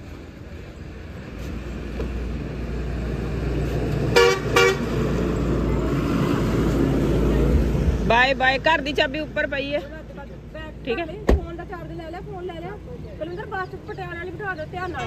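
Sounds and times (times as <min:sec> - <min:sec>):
truck engine and tyre rumble: 0:00.0 - 0:15.0
truck horn toots: 0:04.1 - 0:04.9.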